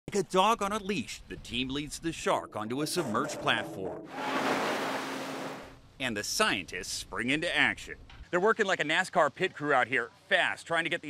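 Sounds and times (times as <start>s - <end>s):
seawater rushing and splashing: 4.0s - 5.7s.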